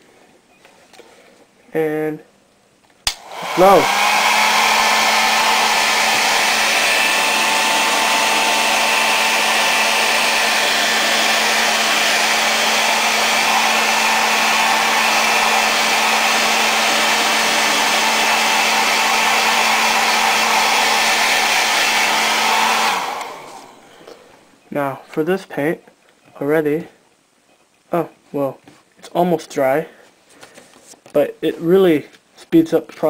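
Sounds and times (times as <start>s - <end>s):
hair dryer running: 3.1s - 24.3s.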